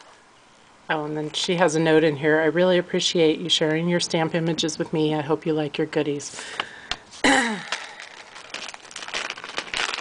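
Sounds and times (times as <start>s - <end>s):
packaging crinkling: 6.4s - 10.0s.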